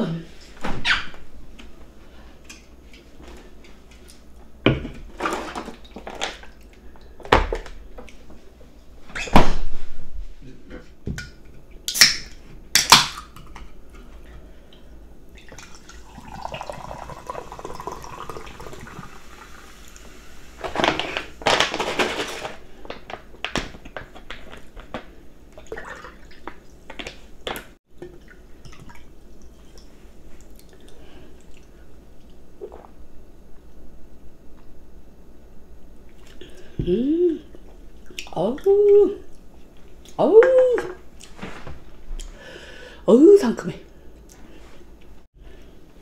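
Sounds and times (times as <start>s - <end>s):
water poured into a mug: 15.4s - 20.0s.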